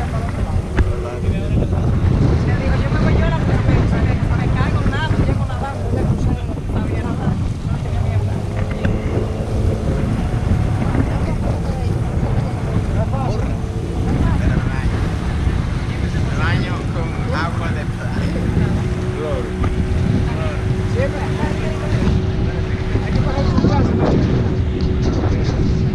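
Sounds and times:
motorboat engine rumbling: 0.0s - 25.9s
water rushing past hull: 0.0s - 25.9s
wind buffeting microphone: 0.0s - 25.9s.

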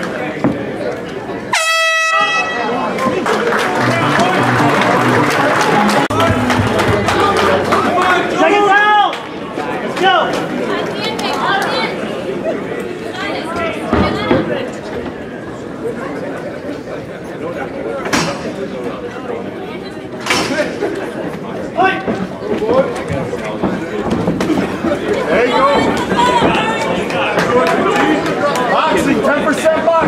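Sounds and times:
crowd shouting and cheering: 0.0s - 14.8s, 21.8s - 30.0s
air horn: 1.5s - 2.8s.

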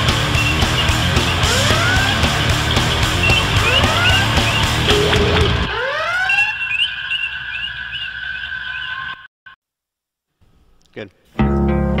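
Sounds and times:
chirping electronic blips: 0.0s - 9.3s
electronic tones gliding upward: 0.4s - 9.3s.

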